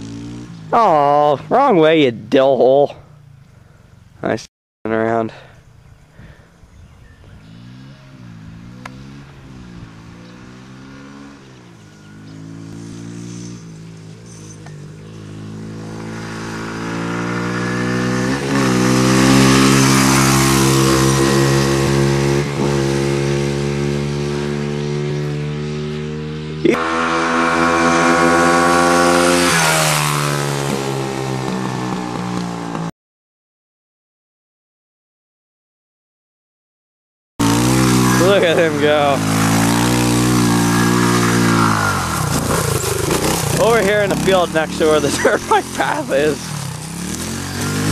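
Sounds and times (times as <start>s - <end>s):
dirt bike engine revving: 0.0s - 1.9s, 7.3s - 32.9s, 37.4s - 47.9s.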